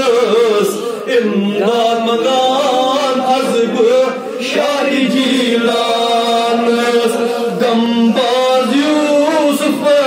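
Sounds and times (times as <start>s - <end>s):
men chanting devotional poem: 0.0s - 10.0s.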